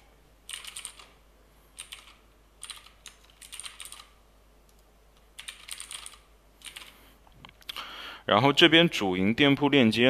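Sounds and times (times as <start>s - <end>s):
computer keyboard typing: 0.5s - 1.2s, 1.8s - 7.0s.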